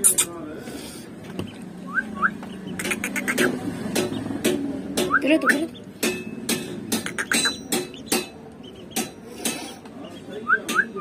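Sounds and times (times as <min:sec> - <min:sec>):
duckling peeping: 0:01.2 - 0:04.4, 0:06.9 - 0:11.0.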